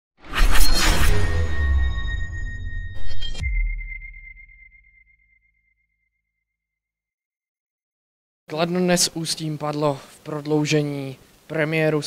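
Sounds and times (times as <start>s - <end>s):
electronic logo sting: 0.2s - 5.5s
high ringing ping: 1.4s - 5.8s.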